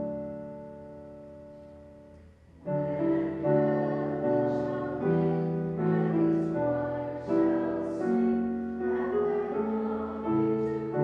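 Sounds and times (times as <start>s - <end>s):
piano chords: 0.0s - 11.0s
choir singing: 2.6s - 11.0s.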